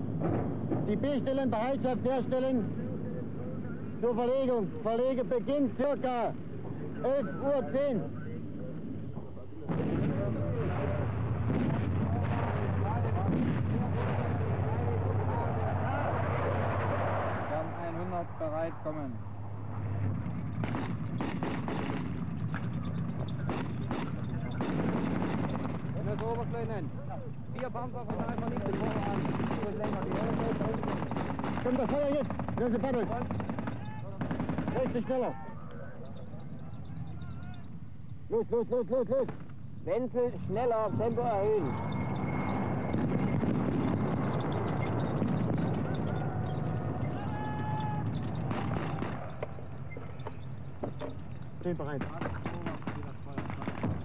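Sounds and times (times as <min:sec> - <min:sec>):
vehicle engine rumble: 0:08.0 - 0:54.0
gunfire shots: 0:09.7 - 0:18.2, 0:20.1 - 0:26.8, 0:27.6 - 0:35.4, 0:39.2 - 0:39.5, 0:41.7 - 0:54.0.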